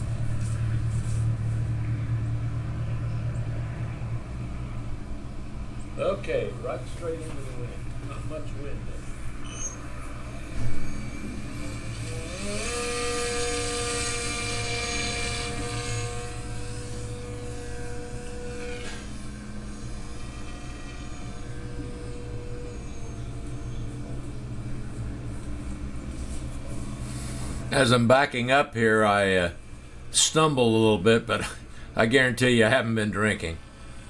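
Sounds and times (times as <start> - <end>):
electric motor and propeller whine: 0.0 - 34.0.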